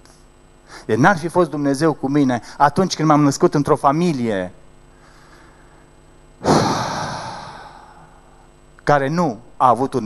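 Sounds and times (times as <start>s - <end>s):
man sighing into microphone: 6.4s - 8.2s
man speaking: 8.9s - 10.0s.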